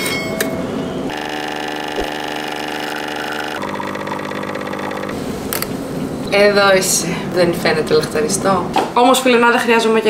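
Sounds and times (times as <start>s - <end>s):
espresso machine pump humming: 1.1s - 5.6s.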